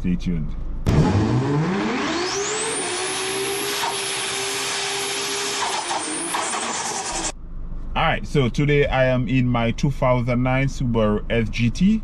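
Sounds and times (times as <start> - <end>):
engine revving: 0.8 - 7.4.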